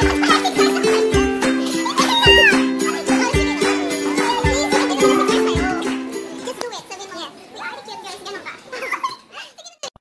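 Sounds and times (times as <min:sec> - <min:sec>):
high voices chattering: 0:00.0 - 0:09.9.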